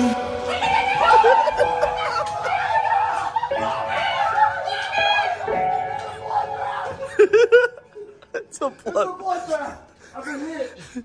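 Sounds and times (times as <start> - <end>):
people snickering and laughing: 0.6 - 4.7, 5.4 - 9.7.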